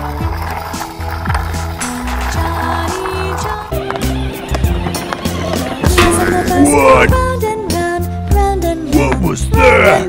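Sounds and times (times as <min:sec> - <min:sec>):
plastic wheels rolling on stone: 0:00.0 - 0:06.0
background music with bass line: 0:05.8 - 0:07.5.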